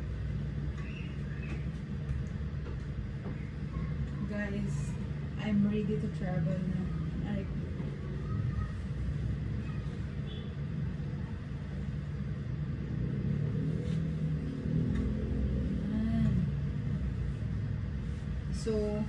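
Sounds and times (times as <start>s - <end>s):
steady low rumble: 0.0s - 19.0s
faint voice: 6.5s - 11.9s.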